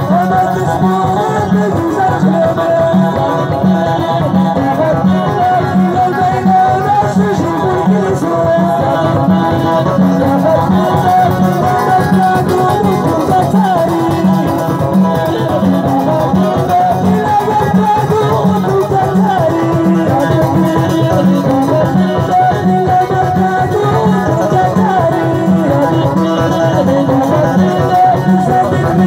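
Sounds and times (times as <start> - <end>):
live band with banjo and guitar: 0.0 - 29.0.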